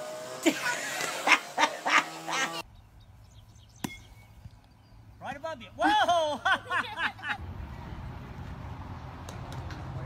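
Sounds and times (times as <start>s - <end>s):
bat striking ball: 3.8s - 4.3s.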